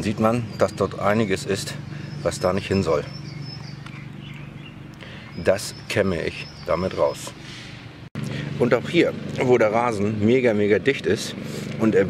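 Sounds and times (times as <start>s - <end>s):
speech: 0.0s - 3.1s, 5.3s - 7.4s, 8.6s - 12.0s
bird chirps: 0.0s - 7.8s
steady low hum: 0.0s - 12.0s.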